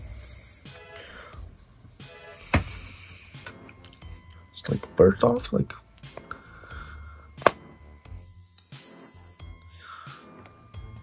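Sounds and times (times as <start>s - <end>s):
faint background music: 0.0s - 11.0s
plastic cap popping off: 7.4s - 7.6s.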